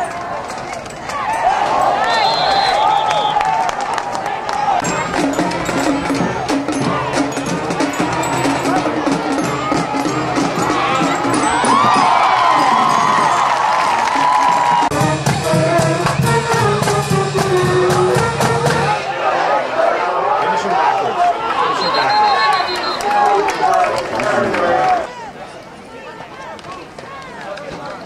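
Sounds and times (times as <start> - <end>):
crowd cheering: 0.0 - 28.0
people shouting: 1.1 - 15.0, 18.1 - 26.5
music with drum strokes: 4.8 - 19.0.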